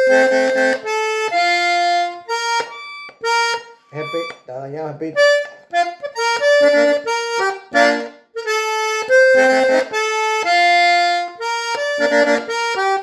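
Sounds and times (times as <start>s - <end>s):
button accordion melody: 0.0s - 13.0s.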